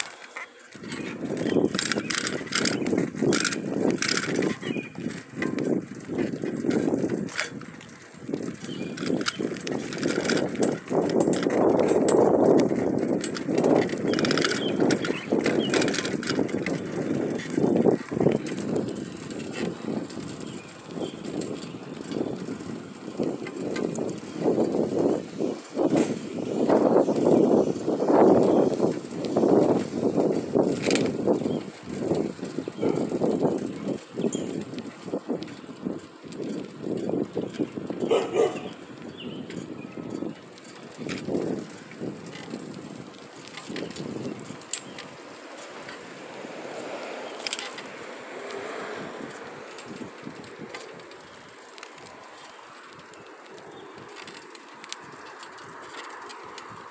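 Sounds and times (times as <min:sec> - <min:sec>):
bicycle tyre noise: 0:00.0 - 0:56.9
bike clicks and rattles: 0:00.0 - 0:56.9
wind rushing over microphone: 0:00.7 - 0:56.9.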